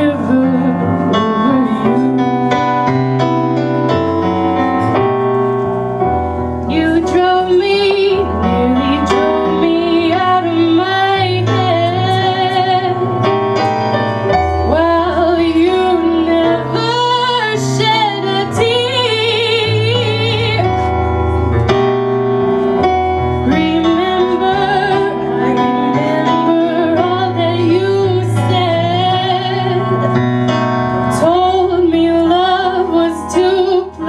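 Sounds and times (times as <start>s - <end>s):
woman singing jazz ballad: 0.0s - 2.6s, 6.6s - 13.4s, 14.6s - 21.0s, 23.4s - 30.2s, 31.1s - 34.0s
piano chords: 0.0s - 34.0s.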